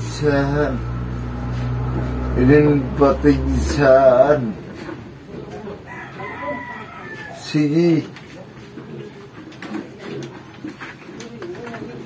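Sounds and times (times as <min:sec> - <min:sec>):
rooster crowing: 0:05.5 - 0:07.6.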